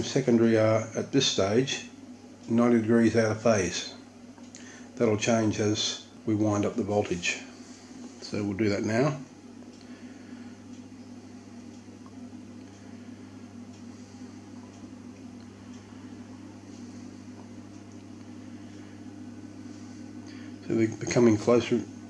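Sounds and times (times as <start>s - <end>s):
faint electrical buzz: 0.0s - 22.0s
transformer humming: 0.0s - 22.0s.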